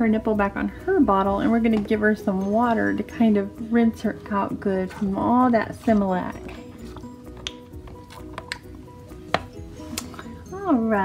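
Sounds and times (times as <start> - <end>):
soft background music: 0.0 - 11.0
plastic bottle clicks and taps: 7.4 - 8.7, 9.3 - 10.2.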